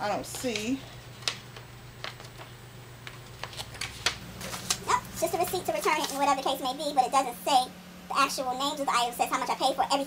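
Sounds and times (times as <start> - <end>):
paper rustling and crackling: 0.3 - 6.5.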